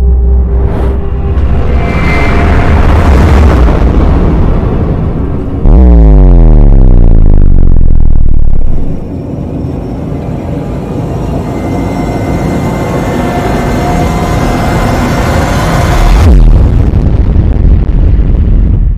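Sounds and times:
deep hit sweeping downward: 0.0s - 9.1s
rumbling whoosh: 0.0s - 9.3s.

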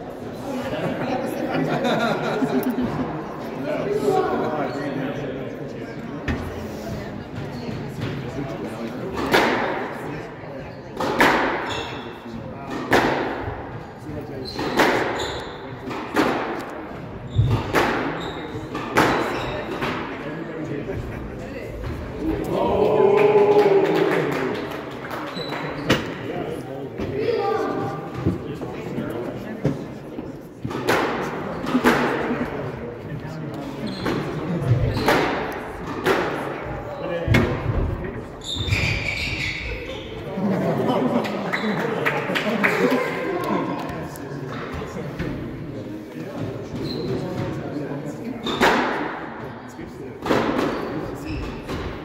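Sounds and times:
court shoes squeaking: 6.3s - 8.4s, 10.5s - 13.0s, 13.8s - 20.0s, 25.2s - 26.3s, 33.5s - 36.2s, 38.4s - 40.4s, 41.2s - 42.0s, 46.2s - 48.9s, 50.3s - 52.0s.

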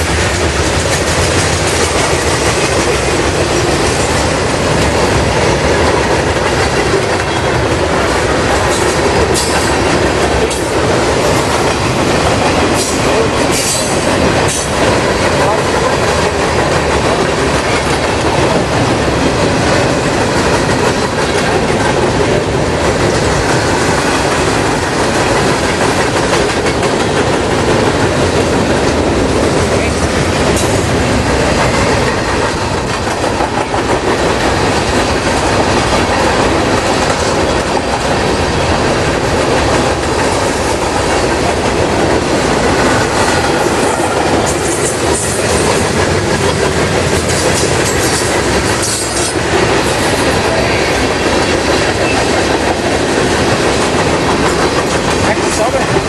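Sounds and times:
clickety-clack over rail joints: 0.0s - 56.0s
steel wheels rumbling on rail: 0.0s - 56.0s.

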